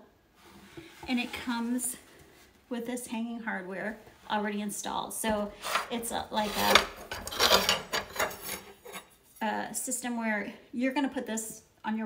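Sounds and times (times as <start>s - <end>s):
metal rail scraping on wood: 5.4s - 9.2s.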